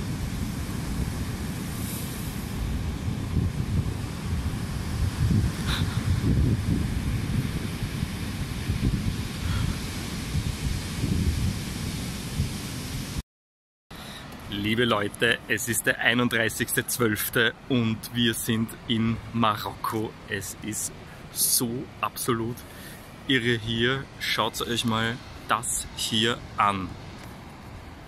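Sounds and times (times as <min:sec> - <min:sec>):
breaking surf: 0:00.0 - 0:13.2
wind buffeting microphone: 0:00.0 - 0:13.2.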